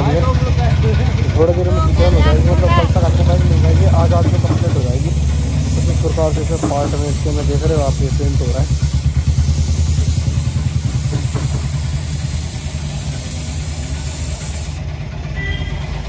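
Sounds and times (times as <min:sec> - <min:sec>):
low mechanical rumble: 0:00.0 - 0:16.0
spray gun hissing: 0:01.9 - 0:14.9.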